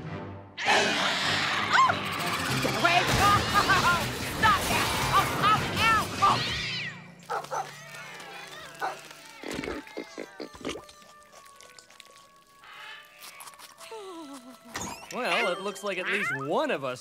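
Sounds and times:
animal noises: 6.4 - 16.8
cartoon background music: 14.7 - 17.0.

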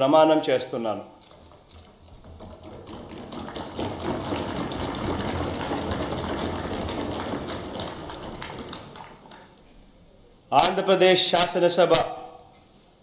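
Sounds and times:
applause: 3.4 - 9.2.

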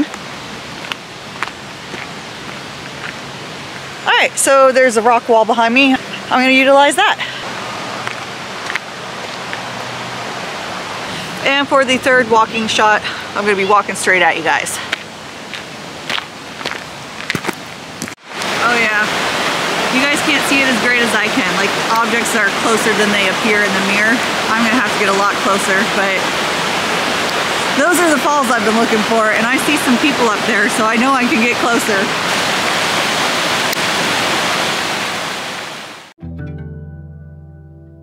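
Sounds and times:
creek water rushing: 0.0 - 36.1
steady outdoor hiss: 0.0 - 36.1
faint footsteps on path: 0.1 - 4.0, 8.0 - 10.4, 14.6 - 18.6
person speaking: 11.1 - 14.9, 18.5 - 19.2, 19.9 - 26.2.

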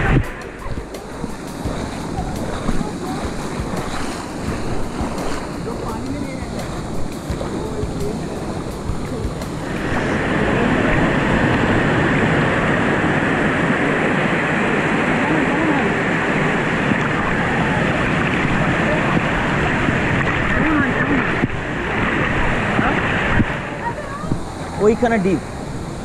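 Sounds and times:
water rushing down rocks: 0.0 - 26.0
wind buffeting microphone: 0.0 - 26.0.

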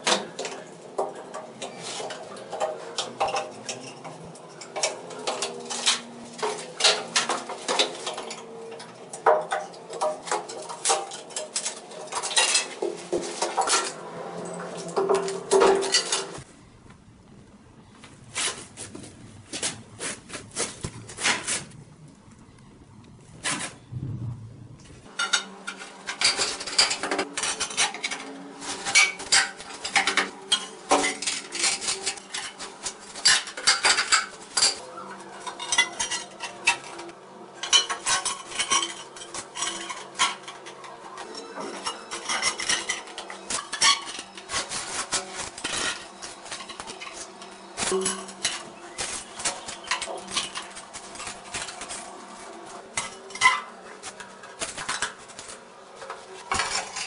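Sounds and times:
hand tools clinking and scraping: 0.0 - 16.5, 25.1 - 57.0.

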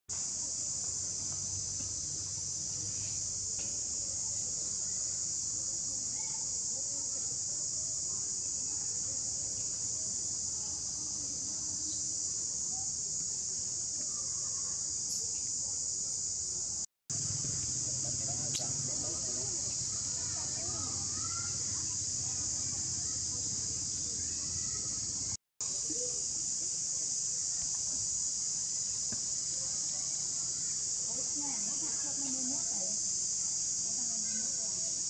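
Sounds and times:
insects buzzing: 0.1 - 35.0.

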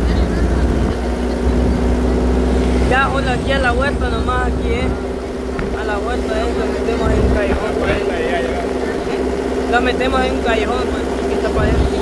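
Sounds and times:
vehicle engine and road drone: 0.0 - 12.0.

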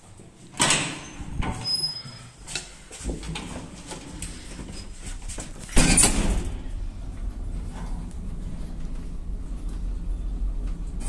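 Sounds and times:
metal lift door clacking: 0.5 - 1.9, 5.7 - 6.7.

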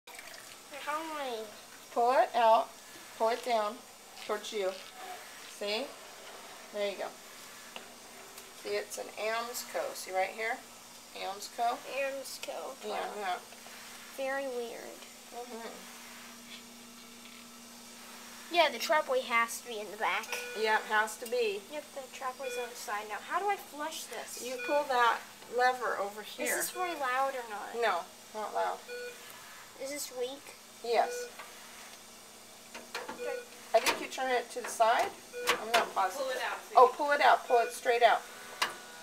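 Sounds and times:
light hiss: 0.1 - 37.2
faint steady hum: 0.1 - 39.0.

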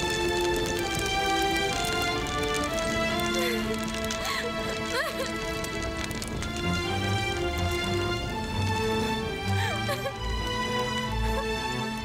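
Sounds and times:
dramatic sustained chord music: 0.0 - 12.0.

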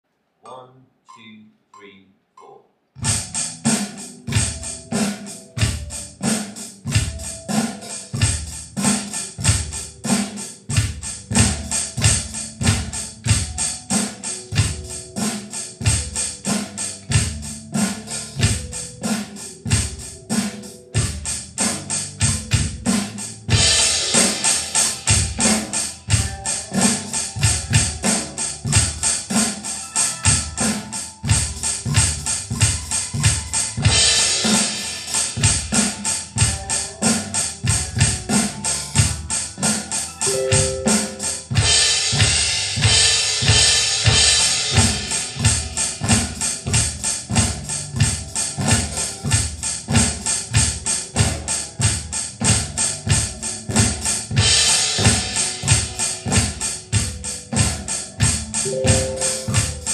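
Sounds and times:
backing track with bass: 3.0 - 59.9
electronic drum kit rock groove: 3.0 - 59.9.

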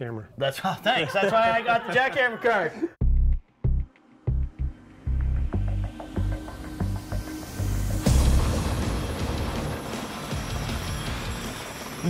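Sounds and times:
loud crash: 8.0 - 12.0
jackhammer breaking concrete: 8.1 - 12.0.

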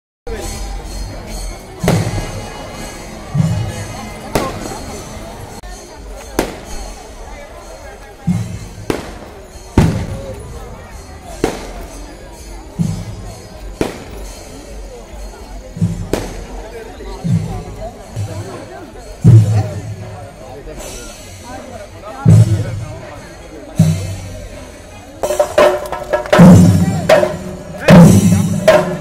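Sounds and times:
music: 0.3 - 29.0
voices: 0.3 - 29.0
firecrackers banging: 0.9 - 5.5, 6.1 - 7.2, 8.2 - 14.8, 15.8 - 16.6, 25.2 - 29.0.

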